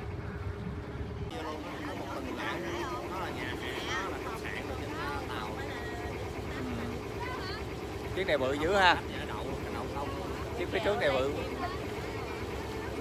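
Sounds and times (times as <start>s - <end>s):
boat engine droning: 0.0s - 13.0s
passengers chattering: 1.3s - 13.0s.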